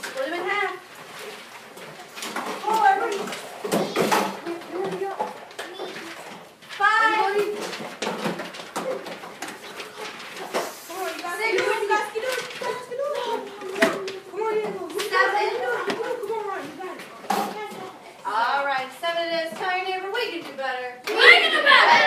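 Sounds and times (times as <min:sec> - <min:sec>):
papers rustling: 0:00.0 - 0:18.8
children calling out: 0:08.8 - 0:18.2, 0:21.1 - 0:22.0.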